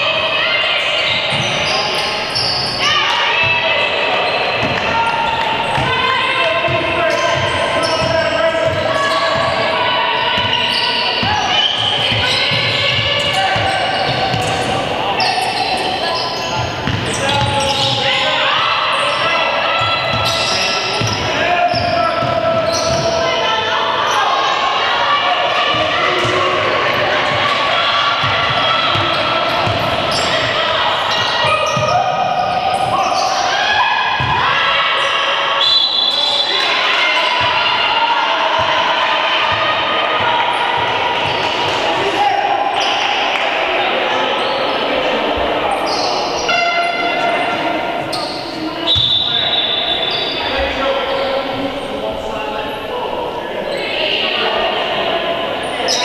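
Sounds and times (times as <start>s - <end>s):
players calling out: 0.0s - 56.0s
basketball bouncing on wooden court: 11.2s - 14.8s, 16.7s - 18.0s.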